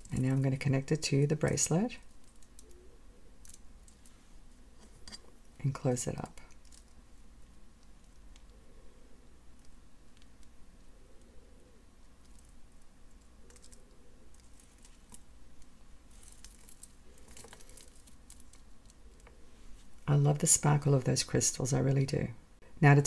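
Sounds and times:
bead bracelet handled: 2.0s - 2.8s, 3.4s - 5.6s, 6.4s - 8.6s, 12.0s - 20.0s.

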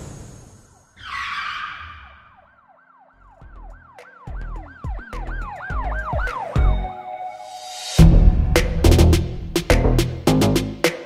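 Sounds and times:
siren-like wailing tone: 0.9s - 8.0s
deep bass hits: 8.0s - 10.8s.

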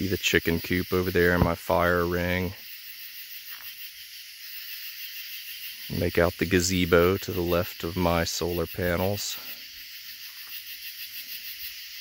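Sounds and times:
night insects buzzing: 0.0s - 12.0s.

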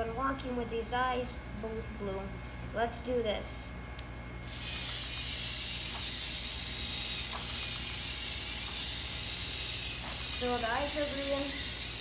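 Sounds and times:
robot motor whirring: 4.4s - 12.0s.

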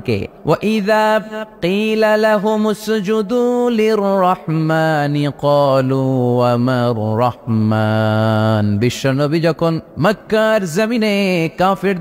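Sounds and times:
man chanting melodic recitation: 0.0s - 12.0s.

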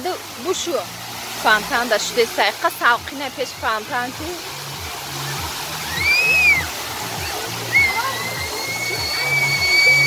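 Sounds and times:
fountain water falling: 0.0s - 10.0s
music with low bass line: 3.0s - 10.0s.

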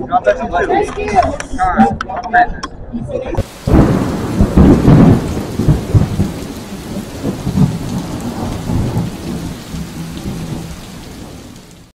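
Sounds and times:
low rolling thunder: 3.4s - 11.9s
rain hissing: 3.4s - 11.9s.

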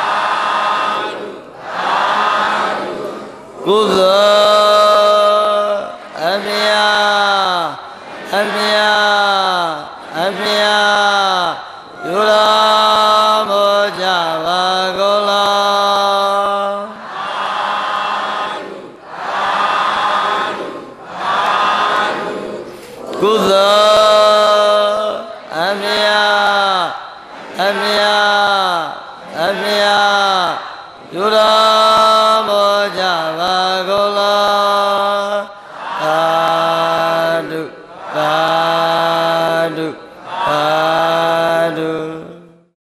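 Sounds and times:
congregation chanting in unison: 0.0s - 42.7s
monk chanting into a microphone: 2.8s - 19.1s, 21.7s - 42.8s.

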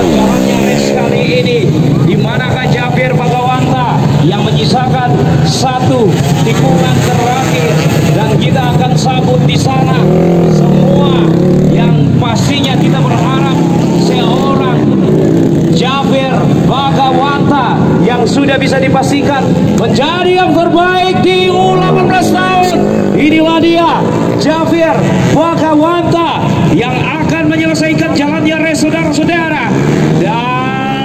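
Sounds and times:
crowd voices: 0.0s - 31.0s
dirt-bike engines droning: 0.0s - 31.0s.

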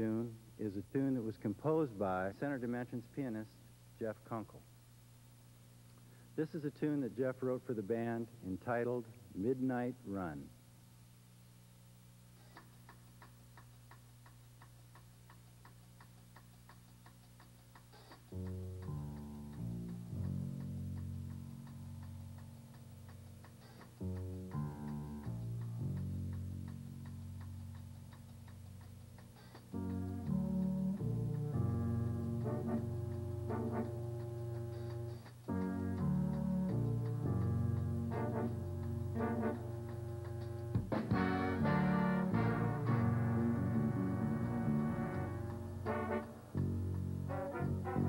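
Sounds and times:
drummer ticking time: 12.8s - 48.0s
big band horn and bass chords: 24.0s - 27.7s, 29.7s - 48.0s.

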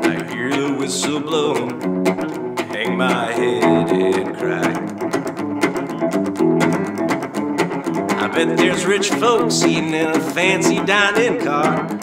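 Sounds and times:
clean electric guitar country rhythm: 0.0s - 12.0s.

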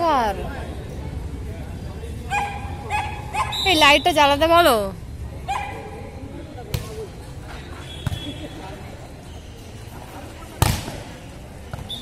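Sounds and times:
volleyball hit by hand: 10.6s - 11.1s.

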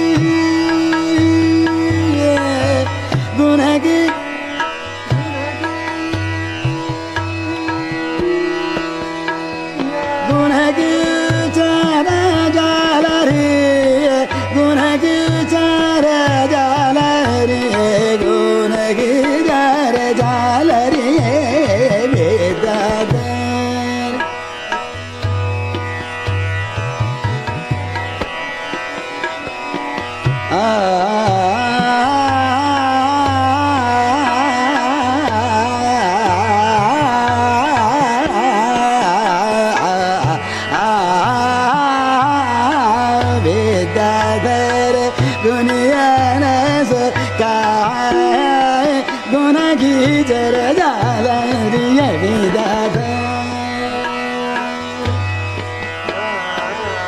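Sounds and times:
man singing ornamented phrases: 0.0s - 6.3s, 7.0s - 24.3s, 30.5s - 55.2s, 56.0s - 57.0s
harmonium: 0.0s - 57.0s
tabla drumming: 0.0s - 57.0s.

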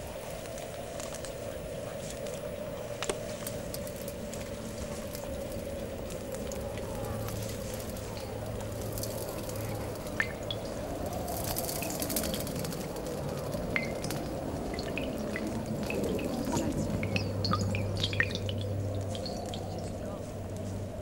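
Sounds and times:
steady low hum: 0.0s - 21.0s
water drops plinking: 9.0s - 20.0s.

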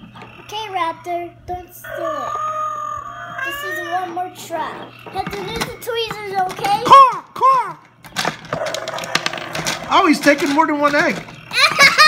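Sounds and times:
plastic toy parts clicking: 5.1s - 11.6s.

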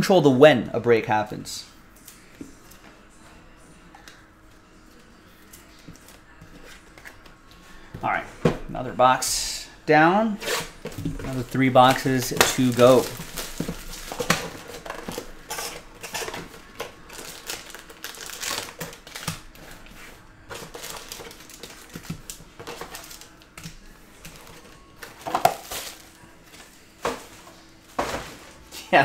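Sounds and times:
card packs rustling and tapping: 10.8s - 28.8s
cellophane wrap crinkling: 11.2s - 19.6s, 20.4s - 26.2s.

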